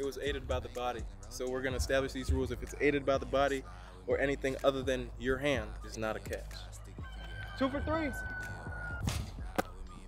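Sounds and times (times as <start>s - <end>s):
ball smack: 9.0s - 9.8s.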